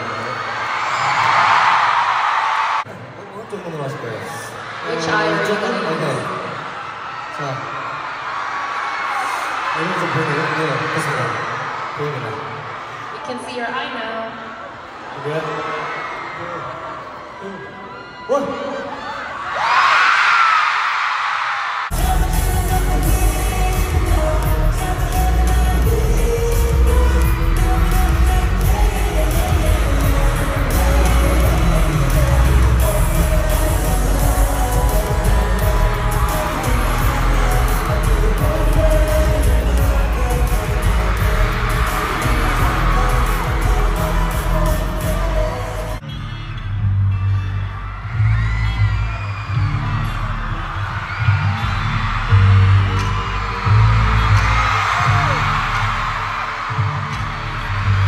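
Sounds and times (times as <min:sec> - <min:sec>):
deep bass pulses: 0:21.9 - 0:45.9
high voices: 0:21.9 - 0:46.0
crowd voices: 0:21.9 - 0:46.1
singing: 0:21.9 - 0:46.1
loud amplified pop music: 0:21.9 - 0:58.0.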